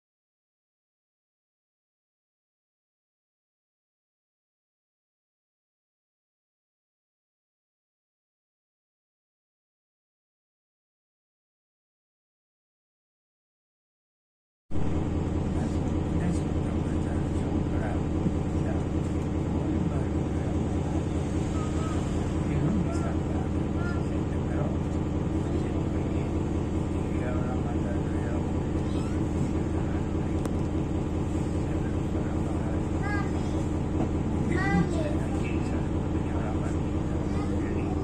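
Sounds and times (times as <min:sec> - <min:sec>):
traffic rumble: 0:14.7 - 0:38.0
faint voices: 0:15.5 - 0:38.0.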